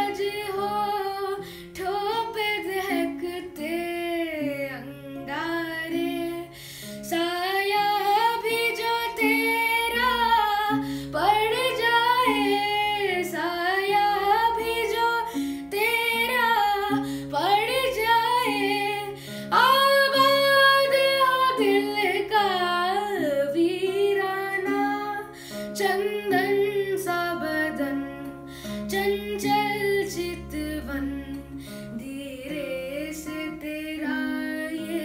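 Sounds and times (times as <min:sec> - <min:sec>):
boy singing: 0:00.0 - 0:06.5, 0:07.1 - 0:35.0
strummed acoustic guitar: 0:00.0 - 0:35.0.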